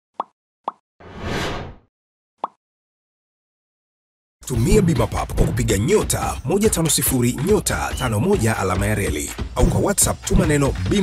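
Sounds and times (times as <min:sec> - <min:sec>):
whoosh: 0:01.0 - 0:01.8.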